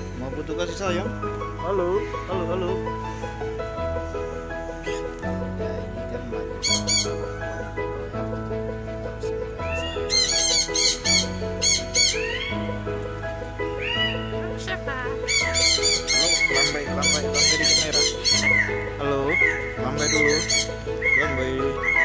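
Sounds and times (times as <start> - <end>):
background music held chords: 0.0 - 22.0
parrot squawking: 6.6 - 7.3, 9.7 - 12.6, 13.8 - 14.3, 15.2 - 22.0.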